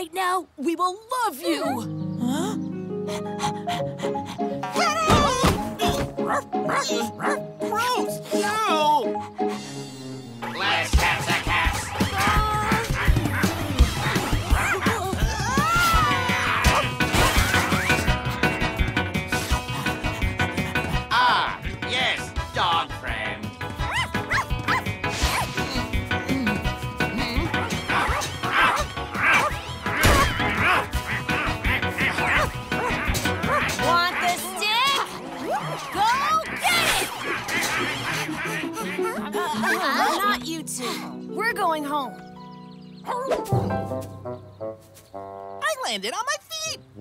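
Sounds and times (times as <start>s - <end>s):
cartoon dog barking: 5.8s - 7.4s, 27.9s - 40.2s
action music: 8.3s - 39.4s, 43.4s - 45.4s.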